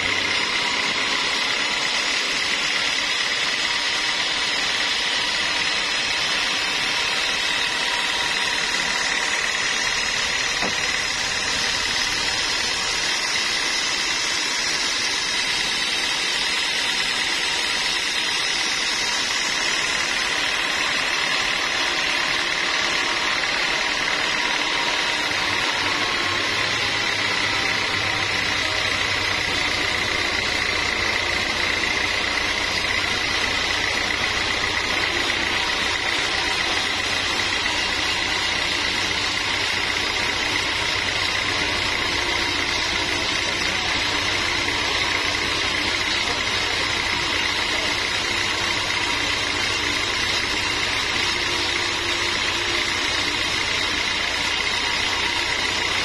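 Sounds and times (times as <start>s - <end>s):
sawmill machinery whining: 0.0s - 56.0s.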